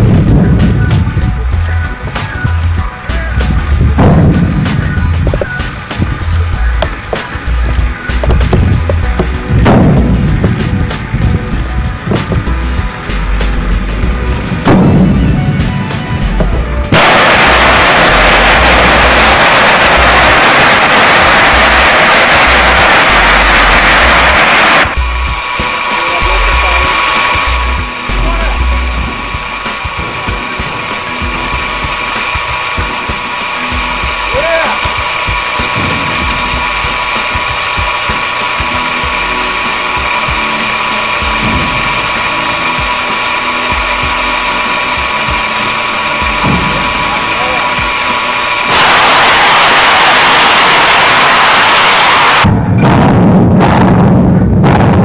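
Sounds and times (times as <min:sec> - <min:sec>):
high-pitched machinery whine: 0:00.0 - 0:53.0
loud rushing hiss: 0:00.0 - 0:55.0.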